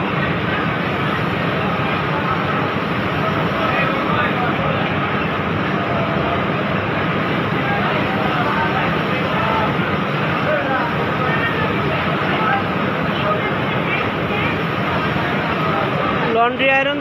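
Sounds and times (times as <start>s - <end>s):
factory machine hum and hiss: 0.0s - 17.0s
workers chattering: 0.0s - 17.0s.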